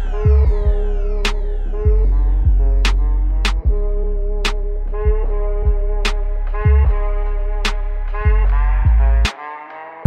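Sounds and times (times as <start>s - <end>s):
falling synth sweeps: 0.0s - 8.6s
heavy bass line: 0.0s - 9.3s
electronic music: 0.0s - 10.0s.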